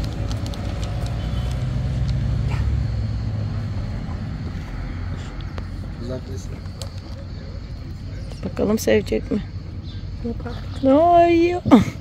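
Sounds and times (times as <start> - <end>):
car passing: 0.0 - 10.2.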